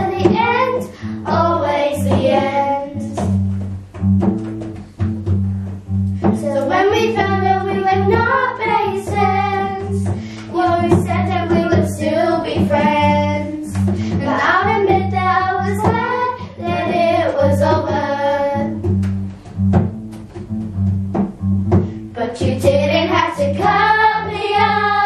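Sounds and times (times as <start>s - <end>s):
children singing in unison: 0.0s - 3.2s, 6.2s - 18.8s, 22.3s - 25.0s
strummed acoustic guitar: 0.0s - 25.0s.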